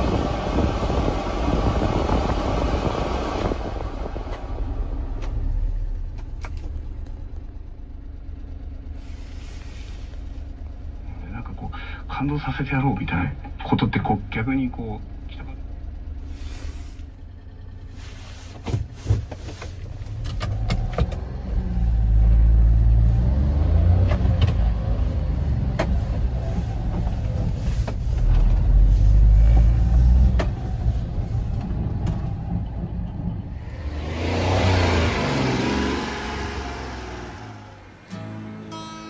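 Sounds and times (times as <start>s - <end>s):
small truck engine accelerating: 15.2s - 39.0s.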